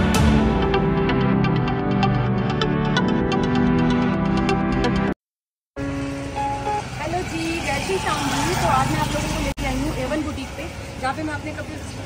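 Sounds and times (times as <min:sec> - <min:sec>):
background music: 0:00.0 - 0:05.2, 0:05.8 - 0:07.2
road traffic noise: 0:05.8 - 0:12.0.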